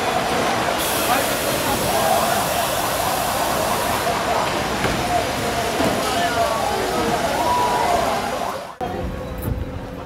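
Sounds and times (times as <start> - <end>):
loud rushing noise: 0.0 - 8.8.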